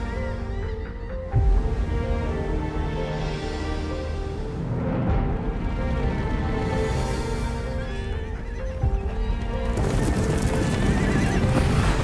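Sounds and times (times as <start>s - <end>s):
dramatic music: 0.0s - 12.0s
clatter of hooves: 9.4s - 12.0s
horse whinnying: 9.7s - 12.0s.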